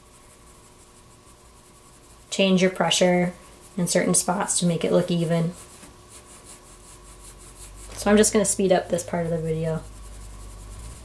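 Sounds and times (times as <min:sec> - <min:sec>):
pencil rubbing on paper: 0:00.0 - 0:11.0.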